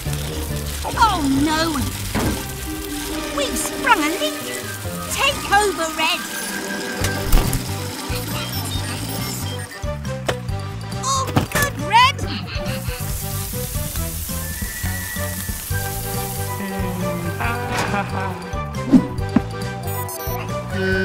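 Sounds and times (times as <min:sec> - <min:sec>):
water spraying from fire hose: 0:00.0 - 0:09.8, 0:12.6 - 0:19.3
cartoon music with steady beat: 0:00.3 - 0:21.0
rising whistle effect: 0:14.3 - 0:16.2.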